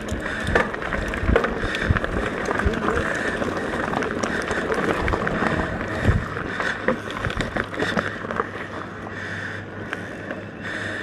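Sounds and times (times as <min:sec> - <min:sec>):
bike clicking and rattling: 0:00.0 - 0:11.0
bike tyres rolling on dirt: 0:00.0 - 0:11.0.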